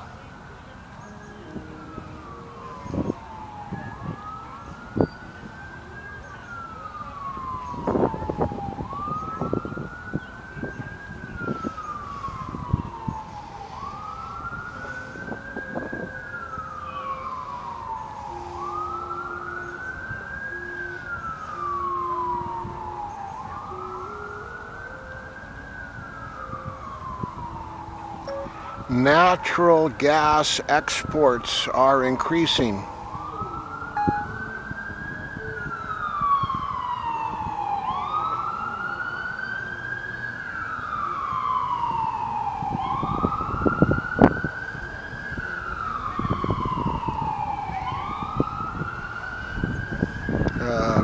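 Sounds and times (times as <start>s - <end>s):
emergency siren wailing: 0.0s - 51.0s.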